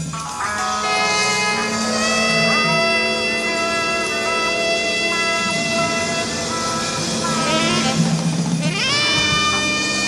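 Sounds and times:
jazz fusion band holding notes: 0:00.0 - 0:10.0.

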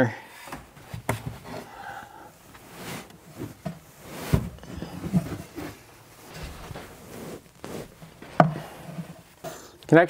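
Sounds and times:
insulation batt rustling on wood: 0:02.4 - 0:09.6.

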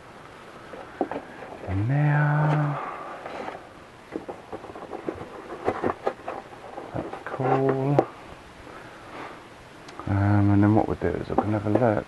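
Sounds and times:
foam rubbing: 0:01.2 - 0:07.9.

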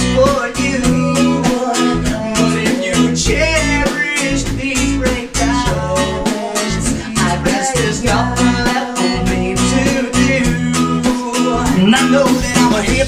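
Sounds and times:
pop-rock song with guitar and bass: 0:00.0 - 0:13.0
voices singing: 0:00.0 - 0:13.0.

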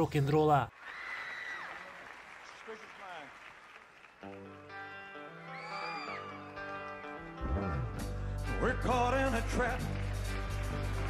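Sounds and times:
live band sustained chords: 0:06.3 - 0:11.0
concert audience noise: 0:08.5 - 0:11.0.

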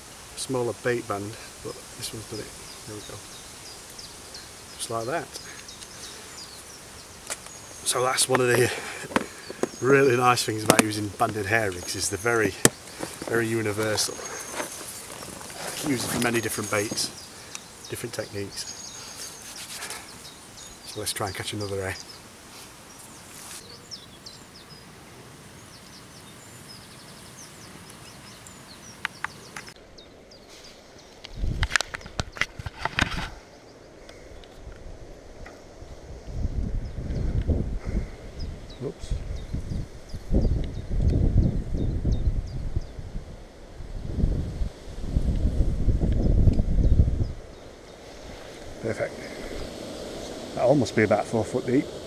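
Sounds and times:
faint bird chirps: 0:01.6 - 0:22.3, 0:22.9 - 0:31.5
microphone handling noise: 0:08.3 - 0:17.3, 0:31.2 - 0:33.4
low rumbling wind bursts: 0:29.8 - 0:52.0.

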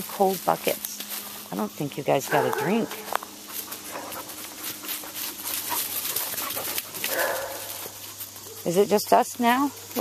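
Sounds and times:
scuffs on leafy ground: 0:00.0 - 0:10.0
dog panting: 0:02.3 - 0:08.2.

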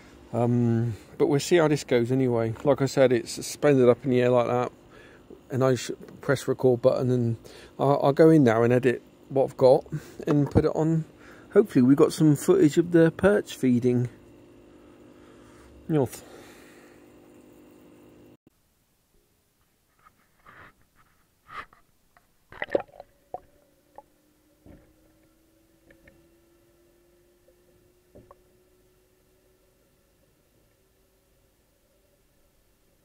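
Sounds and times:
faint hum rising in pitch: 0:00.0 - 0:18.4, 0:22.6 - 0:33.0.

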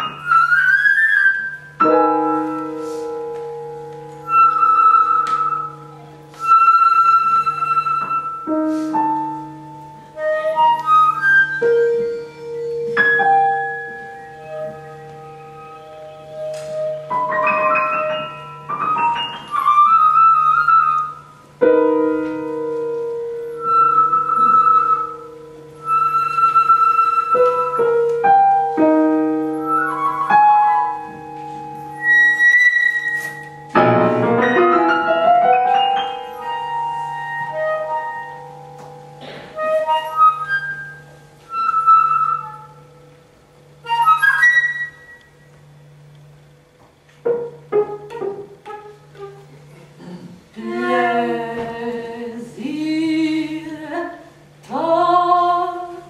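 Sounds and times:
flute playing long held notes: 0:00.0 - 0:21.4, 0:22.3 - 0:33.8, 0:34.5 - 0:45.5
ringing piano chords: 0:01.4 - 0:49.4.

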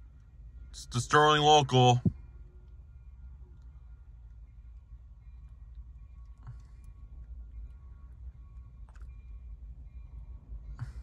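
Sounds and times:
car engine rumble from cabin: 0:00.0 - 0:02.2.

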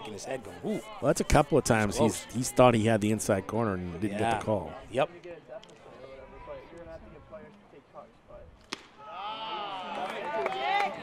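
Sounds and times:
voices calling out: 0:00.0 - 0:05.0.

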